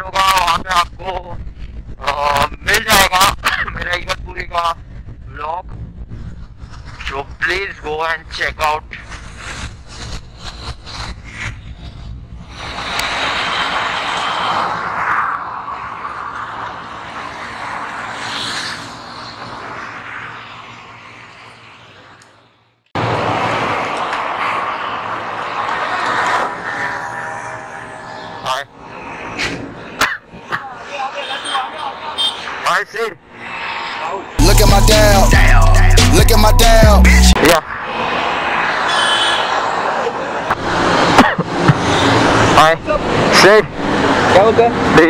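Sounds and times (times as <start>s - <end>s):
wind rushing over microphone: 0.0s - 22.1s, 37.4s - 45.0s
road noise: 0.0s - 45.0s.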